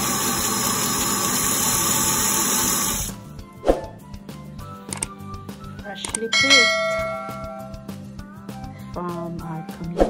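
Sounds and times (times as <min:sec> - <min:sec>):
background music: 0:03.0 - 0:10.0
bright bell-like ding: 0:06.3 - 0:07.9.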